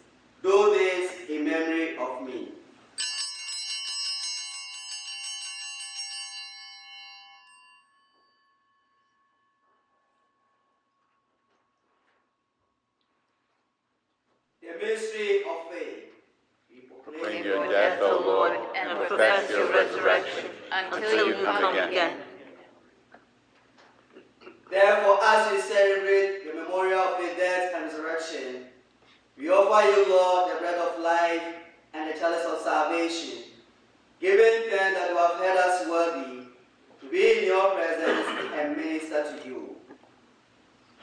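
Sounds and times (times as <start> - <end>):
small bells ringing: 2.9 - 12.0
man's voice: 16.8 - 22.0.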